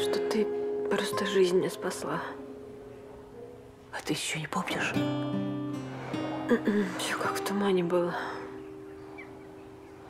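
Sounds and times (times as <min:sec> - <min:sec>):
faint background music: 0:00.0 - 0:10.0
woman whispering: 0:03.9 - 0:05.0, 0:06.6 - 0:08.5.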